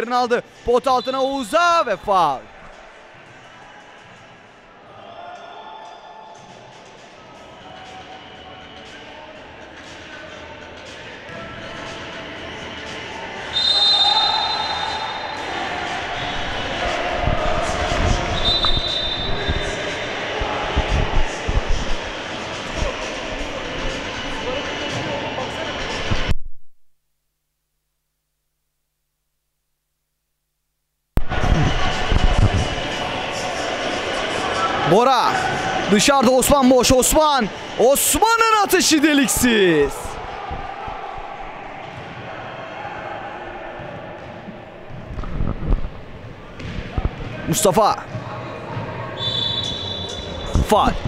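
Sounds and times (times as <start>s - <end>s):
players' voices echoing: 0.0s - 3.6s, 32.6s - 45.2s, 46.2s - 51.0s
referee whistle blasts: 13.5s - 15.4s, 18.3s - 19.8s, 49.2s - 50.7s.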